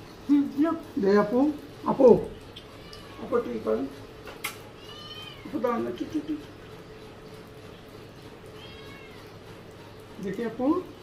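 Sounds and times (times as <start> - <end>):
cat meowing faintly: 2.6 - 3.6, 4.8 - 5.7, 8.5 - 9.4.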